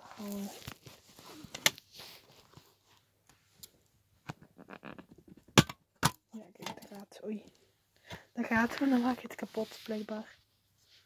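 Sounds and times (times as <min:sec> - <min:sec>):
sharp plastic cracks: 0:05.4 - 0:06.2.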